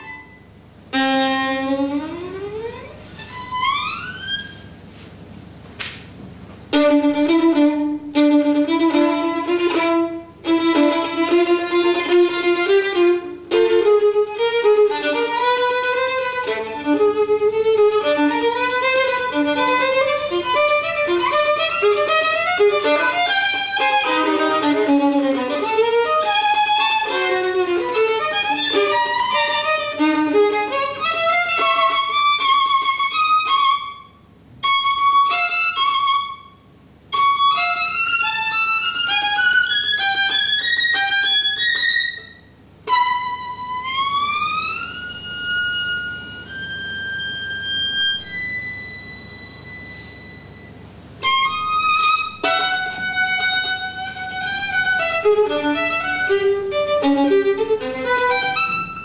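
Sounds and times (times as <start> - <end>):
solo violin playing fast notes: 0.9 - 4.7, 6.7 - 36.5, 37.1 - 49.6, 51.2 - 59.0.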